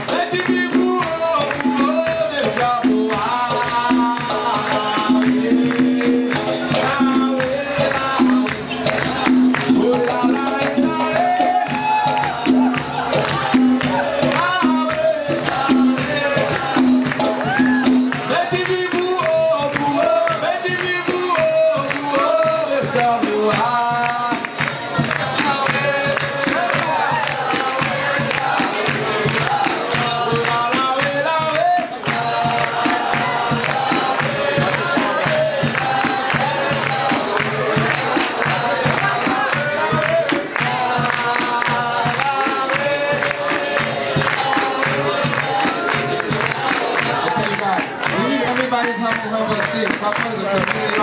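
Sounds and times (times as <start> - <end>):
group of voices singing: 0.0 - 51.0
hand drum: 0.0 - 51.0
hand-clapping: 0.0 - 51.0.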